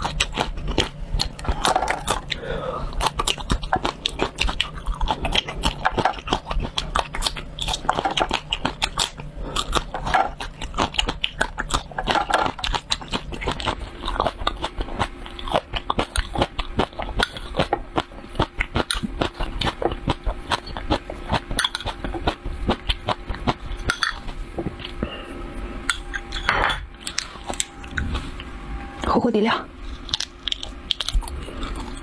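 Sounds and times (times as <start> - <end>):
chewing crunchy peppers: 0.0 - 28.6, 29.8 - 32.0.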